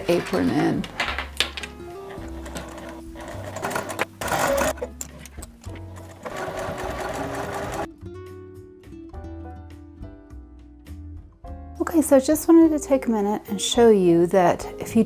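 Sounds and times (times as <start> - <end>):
sewing machine stitching: 2.1 - 7.9.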